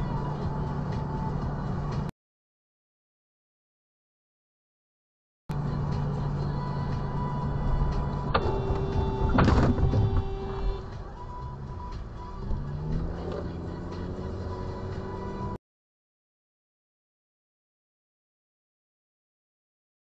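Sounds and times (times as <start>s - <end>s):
car engine and road hum: 0.0s - 2.1s, 5.5s - 15.6s
horn-like tone: 8.3s - 11.0s.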